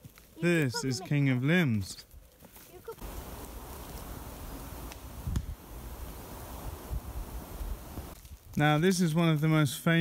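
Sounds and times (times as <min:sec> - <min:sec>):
wind through leaves: 0:00.0 - 0:10.0
wind buffeting microphone: 0:03.0 - 0:08.6.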